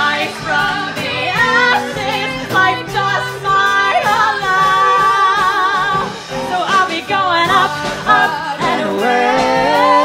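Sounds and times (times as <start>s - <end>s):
live band playing: 0.0s - 10.0s
woman singing with vibrato: 0.0s - 10.0s.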